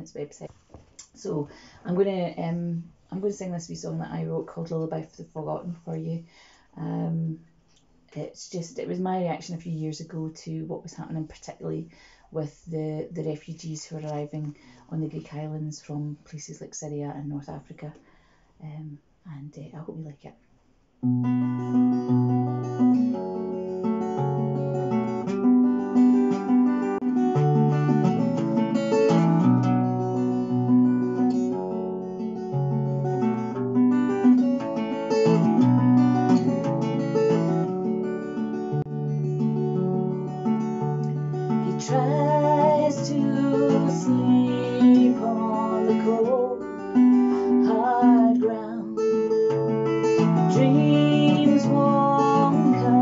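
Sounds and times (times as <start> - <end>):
acoustic guitar chords: 21.0 - 53.0.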